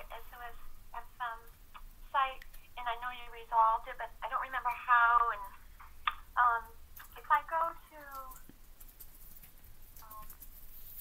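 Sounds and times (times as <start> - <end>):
person talking over phone line: 2.2 - 5.6.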